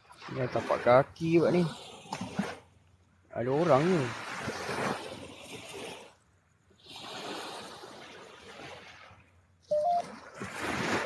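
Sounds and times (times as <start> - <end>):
waves washing onto beach: 0.0 - 11.0.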